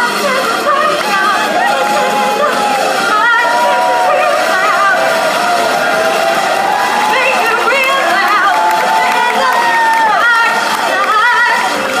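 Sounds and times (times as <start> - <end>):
girl singing through microphone: 0.0 - 5.0
music: 0.0 - 12.0
audience cheering: 0.1 - 12.0.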